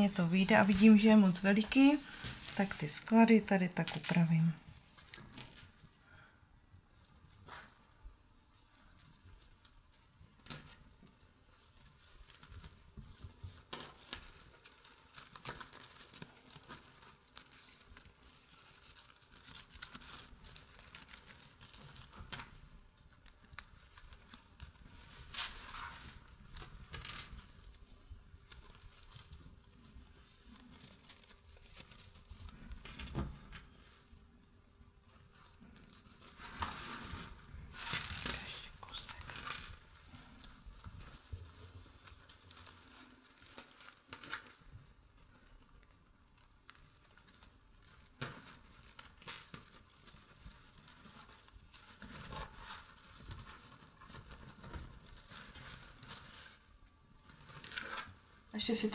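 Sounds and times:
stiff lace rustling and crinkling: 0.0s - 6.2s, 6.9s - 58.9s.

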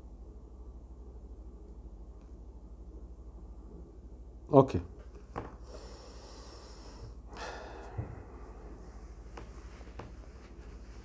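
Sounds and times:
low steady hum: 0.0s - 11.0s
man breathing through nose: 5.6s - 8.8s.

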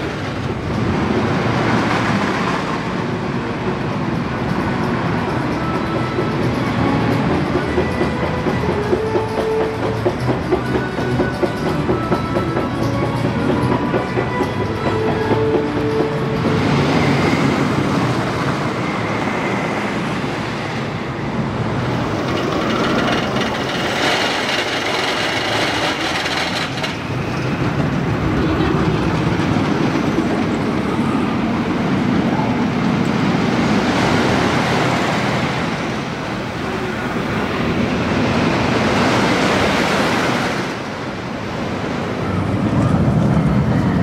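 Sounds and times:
roller coaster rumbling and clacking: 0.0s - 44.0s.

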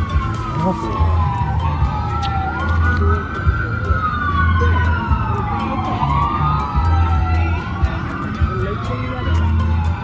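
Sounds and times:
emergency siren wailing: 0.0s - 10.0s.

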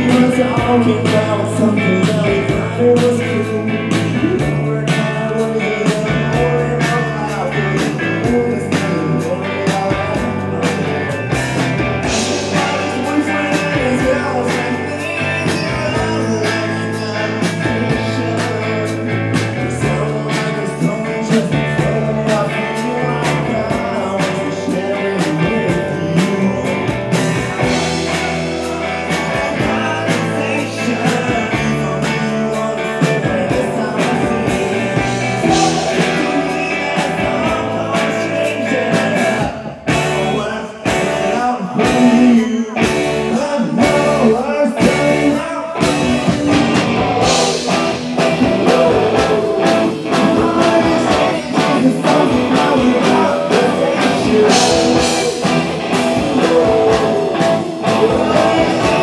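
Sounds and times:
drums: 0.0s - 59.0s
electric guitars: 0.0s - 59.0s
person singing: 0.0s - 59.0s.

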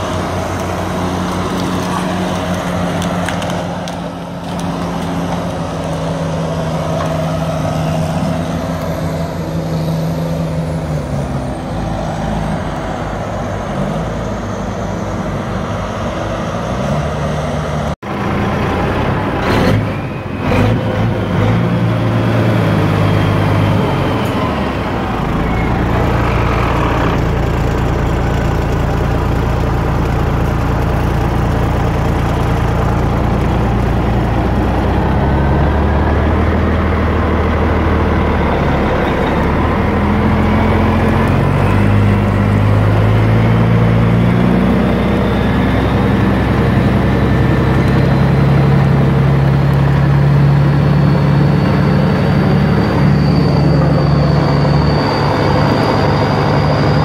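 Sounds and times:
diesel logging machinery running: 0.0s - 57.0s
diesel truck engine idling: 22.0s - 57.0s.

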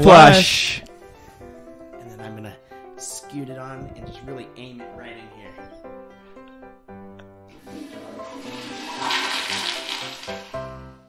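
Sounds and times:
light music: 0.0s - 11.0s
toilet flushing: 7.5s - 10.7s.

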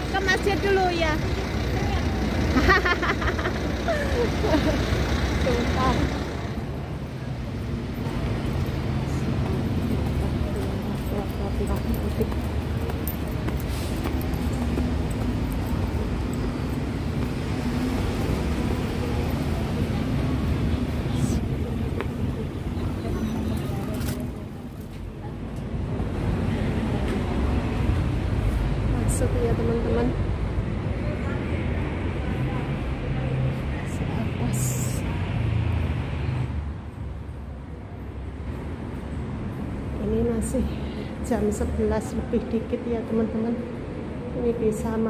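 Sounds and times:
people's voices: 0.0s - 35.6s
road traffic rumble: 0.0s - 45.0s.

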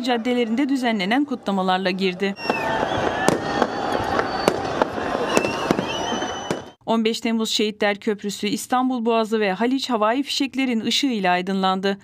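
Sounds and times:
large outdoor crowd: 0.0s - 6.8s
fireworks bangs: 2.4s - 6.8s
fireworks whistles: 2.4s - 6.8s.

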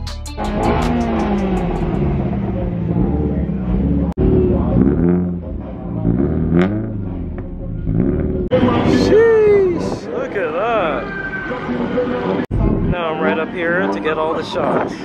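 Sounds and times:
car engine revving: 0.4s - 9.2s.

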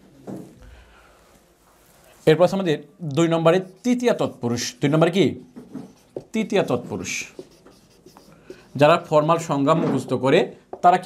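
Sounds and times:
man talking: 2.2s - 5.5s, 6.2s - 7.4s, 8.7s - 11.0s
marker pen writing on whiteboard: 3.0s - 9.8s, 10.6s - 11.0s.

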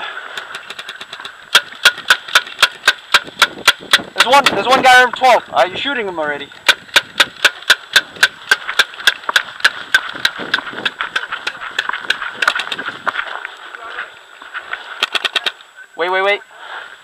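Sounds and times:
paintball marker firing: 0.4s - 4.7s, 6.6s - 12.9s.

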